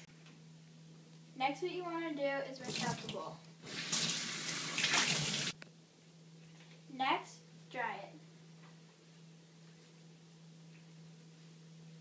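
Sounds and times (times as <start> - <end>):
faucet water running into bowl: 2.6 - 5.6.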